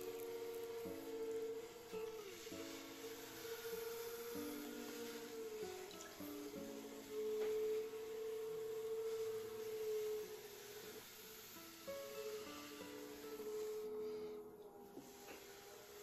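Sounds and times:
quiet music of slow held notes: 0:00.0 - 0:16.0.

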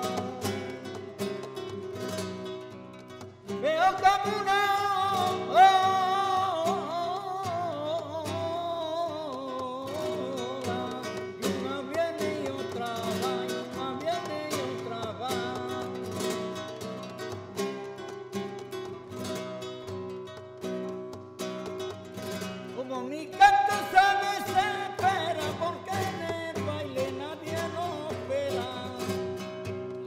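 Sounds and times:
flamenco guitar playing: 0:00.0 - 0:30.0
man singing flamenco: 0:00.0 - 0:30.0.

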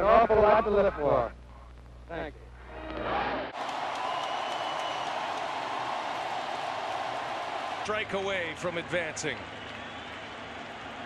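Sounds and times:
stadium crowd roar: 0:02.7 - 0:11.0.

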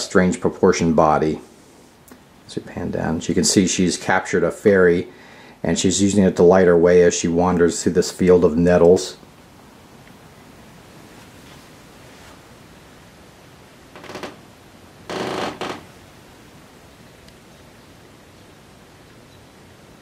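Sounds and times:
steady low hiss: 0:00.0 - 0:20.0.

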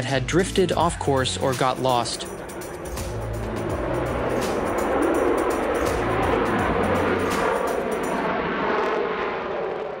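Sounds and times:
music: 0:00.0 - 0:08.3
jet engine roar: 0:00.0 - 0:10.0.

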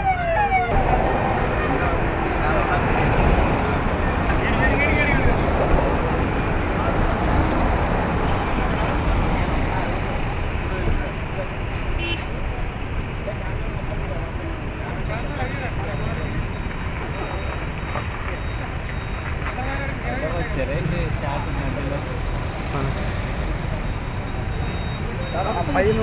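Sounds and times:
vehicles driving past at speed: 0:00.0 - 0:26.0
voices: 0:00.0 - 0:26.0.

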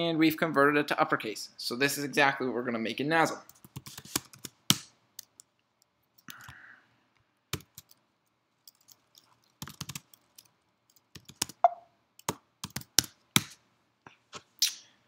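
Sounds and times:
keyboard keys clicking: 0:08.7 - 0:13.1.

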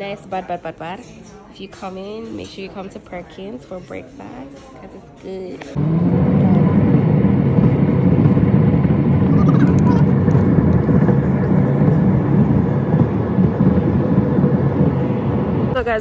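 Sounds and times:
car engine and road noise: 0:05.7 - 0:16.0.

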